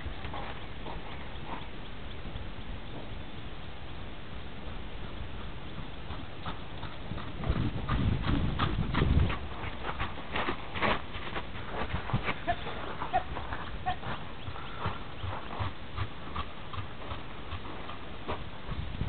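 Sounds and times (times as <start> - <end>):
horse hoof strikes: 0.0 - 3.5, 4.6 - 19.0.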